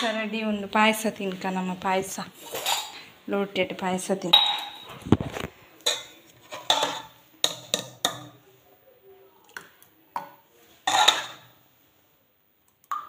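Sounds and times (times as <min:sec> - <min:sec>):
steel pots clinking and knocking: 0:04.3 - 0:05.0, 0:10.9 - 0:11.5.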